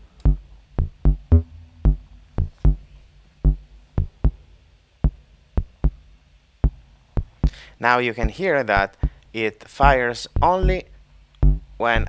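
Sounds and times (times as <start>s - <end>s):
short low synthesizer blips: 0.3s - 2.8s.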